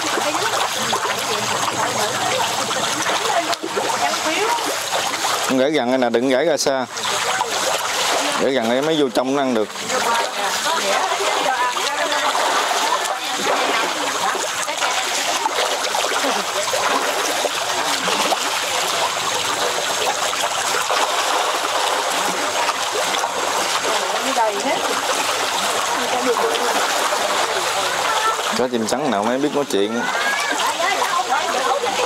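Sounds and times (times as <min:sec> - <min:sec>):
fish splashing at water surface: 0:00.0 - 0:32.0.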